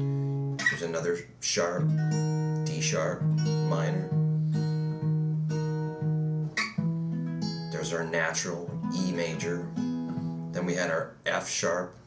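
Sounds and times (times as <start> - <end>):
acoustic guitar chord strummed: 0.0 - 11.4.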